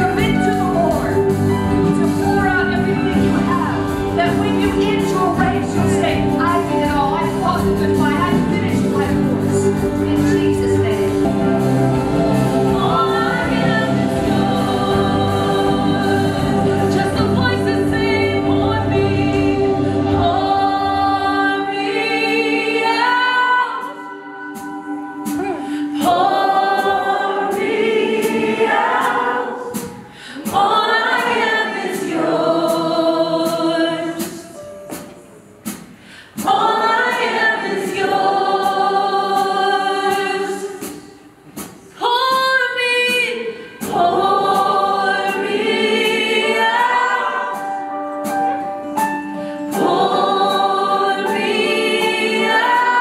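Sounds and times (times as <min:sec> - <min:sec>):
acoustic guitar: 0:00.0 - 0:21.8
woman singing: 0:00.0 - 0:34.6, 0:42.0 - 0:47.8
drums: 0:00.0 - 0:53.0.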